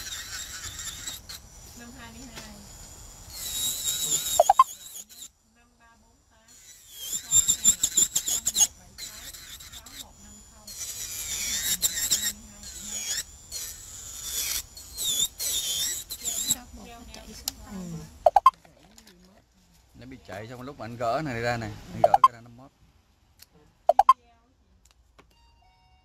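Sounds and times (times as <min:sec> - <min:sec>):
electric nail drill whining: 0:00.0 - 0:05.3, 0:06.4 - 0:17.7.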